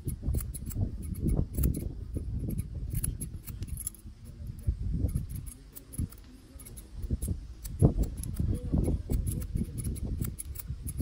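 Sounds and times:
scissors snipping hair: 0.0 - 11.0.

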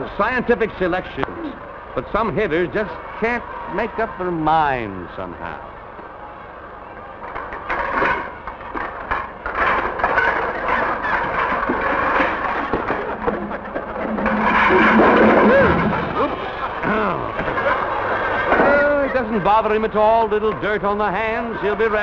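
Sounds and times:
wooden baseball bats clattering: 7.3 - 18.8.

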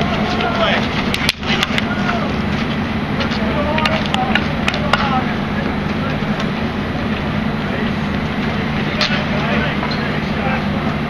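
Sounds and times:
faint voices: 0.0 - 11.0
low hum: 0.0 - 11.0.

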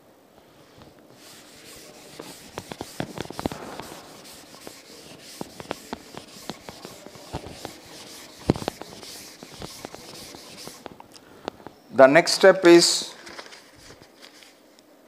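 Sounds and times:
duster scrubbing chalkboard: 0.7 - 11.0.

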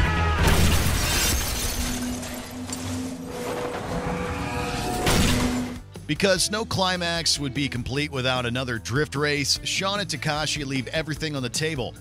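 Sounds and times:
music: 0.0 - 3.1, 4.8 - 12.0
car crash metal and glass smash: 0.4 - 3.8, 4.9 - 5.8
debris clattering: 0.4 - 3.8.

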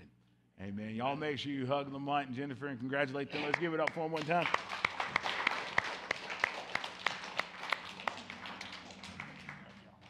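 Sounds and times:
congregation applauding: 3.4 - 10.0
person clapping: 3.4 - 10.0.

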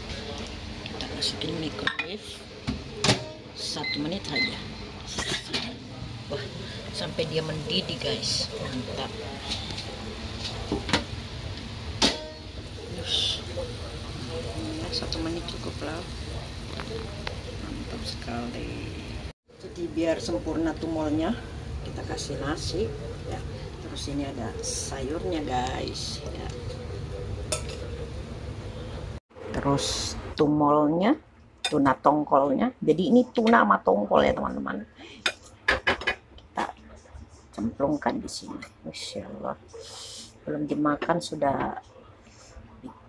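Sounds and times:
kitchen handling noise: 12.0 - 12.5.

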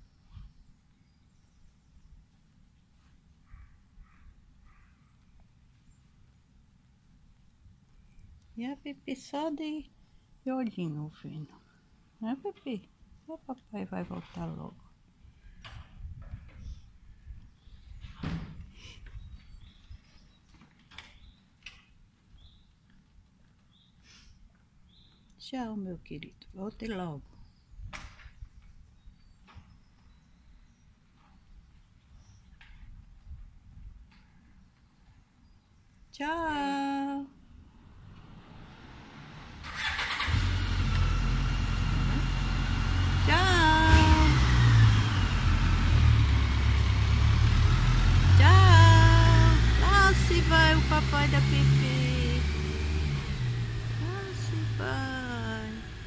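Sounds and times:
low street rumble: 37.2 - 56.0
car driving past: 37.7 - 56.0.

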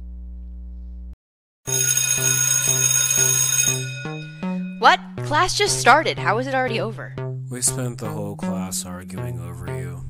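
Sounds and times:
school bell ringing: 1.7 - 5.5
held music chord: 3.7 - 10.0.

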